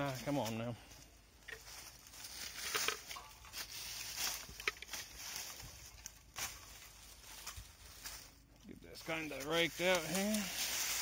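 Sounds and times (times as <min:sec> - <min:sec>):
rake scraping through dry leaves: 0:01.6 - 0:11.0.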